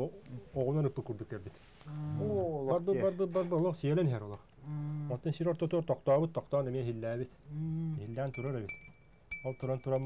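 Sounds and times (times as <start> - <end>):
man speaking: 0.0 - 8.7.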